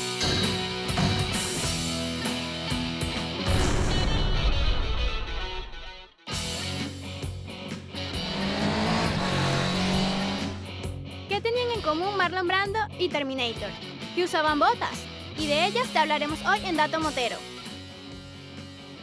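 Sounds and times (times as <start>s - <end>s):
rock jingle with electric guitar: 0.0s - 11.3s, 17.2s - 19.0s
music sting: 3.4s - 6.0s.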